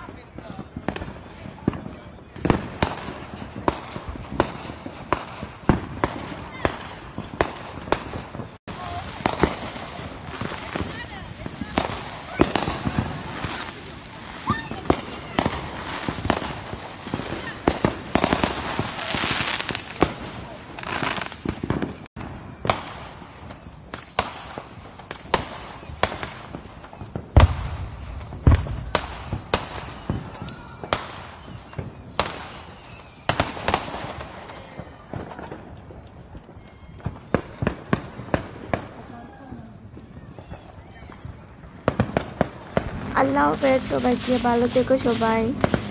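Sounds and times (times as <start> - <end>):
deep firework booms: 0.0 - 24.6, 25.2 - 31.2, 41.8 - 44.1, 45.5 - 45.9
fireworks cracks and bangs: 0.0 - 45.9
falling firework whistles: 22.2 - 34.0.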